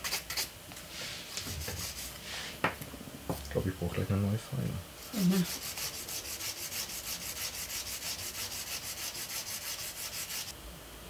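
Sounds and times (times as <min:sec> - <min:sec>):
nail file rasping on nail: 0:00.0 - 0:00.5, 0:01.6 - 0:02.1, 0:05.1 - 0:10.5.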